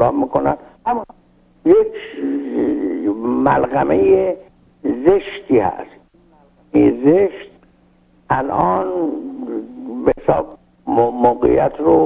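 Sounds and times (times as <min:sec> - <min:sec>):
man hesitating and speaking: 0:00.8 - 0:05.4, 0:08.3 - 0:12.0.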